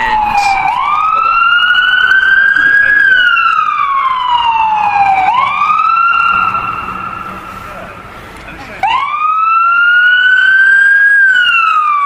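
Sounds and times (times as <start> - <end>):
emergency vehicle siren wailing: 0.0 - 12.0.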